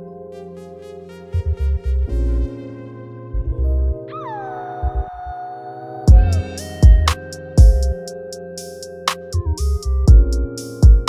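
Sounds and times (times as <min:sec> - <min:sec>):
sustained keyboard chords: 0:00.0 - 0:11.0
bending lead synth note: 0:01.2 - 0:08.0
low bass hits: 0:06.1 - 0:08.0, 0:09.6 - 0:10.5.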